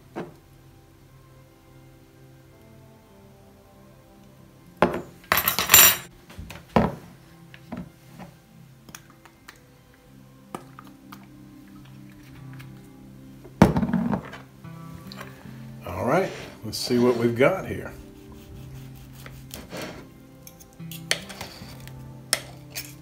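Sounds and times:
quiet background music: 0.0 - 23.0
cutlery clattering on plate: 4.8 - 6.1
pepper grinder grinding: 18.4 - 23.0.

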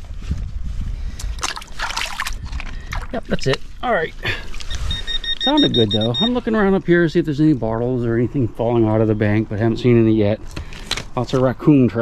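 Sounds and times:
river water splashing: 1.4 - 3.6.

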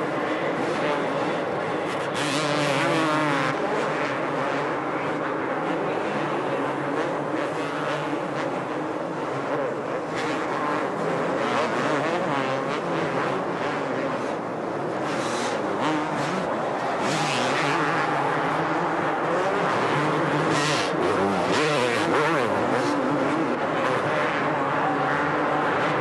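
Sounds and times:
motocross bikes revving: 2.0 - 26.0.

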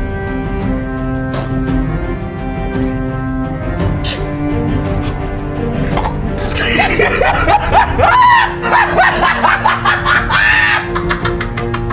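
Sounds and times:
background music: 0.0 - 11.9
high-pitched squealing laughter: 6.6 - 11.9.

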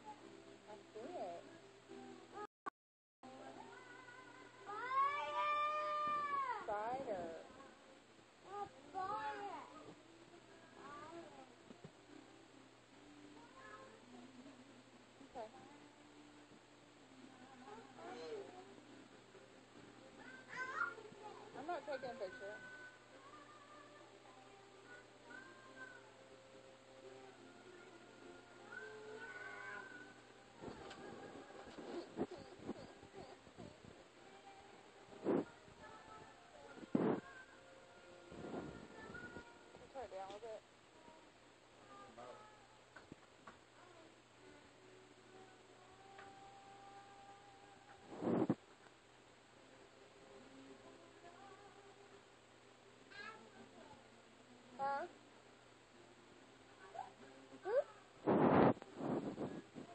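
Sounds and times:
meow-like cry: 4.7 - 6.6.

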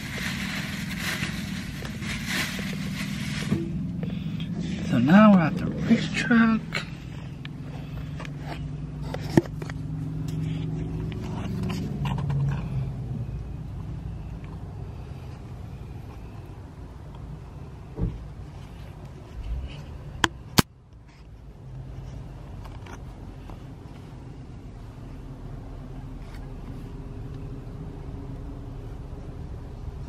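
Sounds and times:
car engine running: 0.0 - 20.6.

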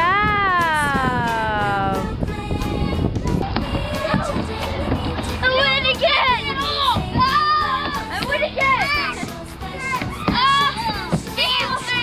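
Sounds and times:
background music: 0.0 - 12.0
children shouting and squealing: 2.8 - 12.0.

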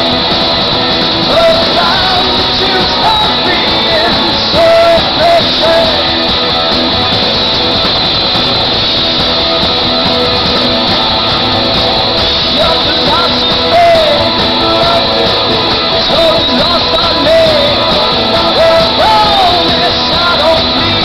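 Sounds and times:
sung vocals: 0.0 - 7.1, 11.0 - 21.0
live rock band: 0.0 - 21.0.

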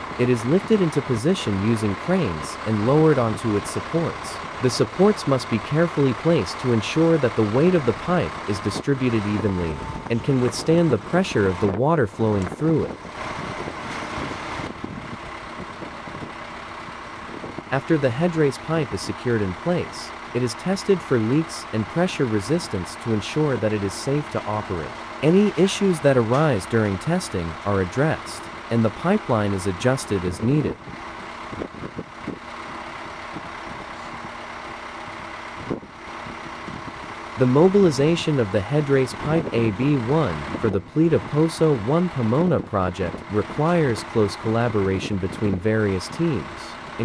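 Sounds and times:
diesel engine rumbling: 0.0 - 47.0.

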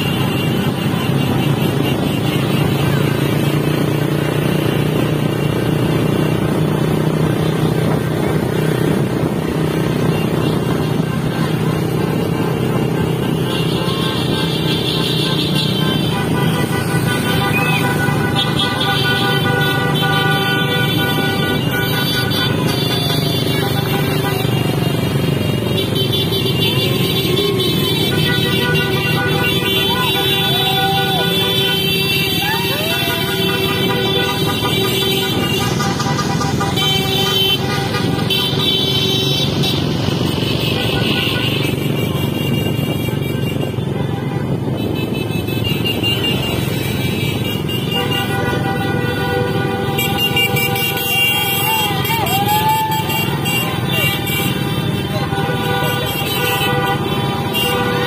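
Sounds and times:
motorcycle and car engines: 0.0 - 58.0
vehicle horns blasting: 0.0 - 58.0.

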